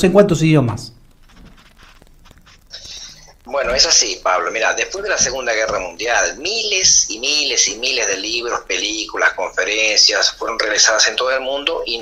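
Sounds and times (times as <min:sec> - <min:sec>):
faint background noise: 0:00.0 - 0:12.0
man speaking: 0:02.8 - 0:12.0.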